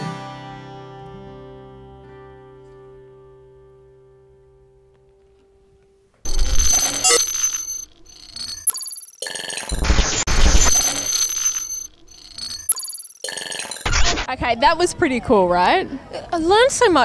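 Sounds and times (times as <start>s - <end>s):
electronic title sting: 6.3s - 14.3s.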